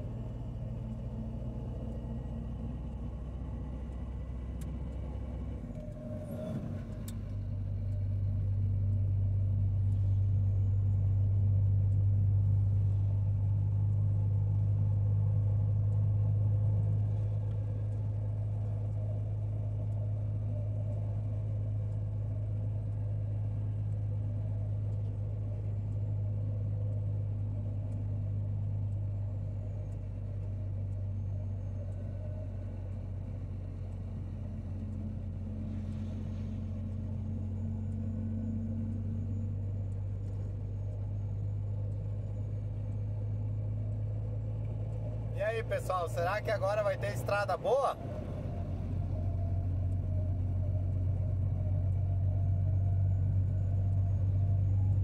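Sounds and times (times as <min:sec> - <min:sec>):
engine clatter: 0:00.0 - 0:55.0
vehicle engine and road drone: 0:00.0 - 0:55.0.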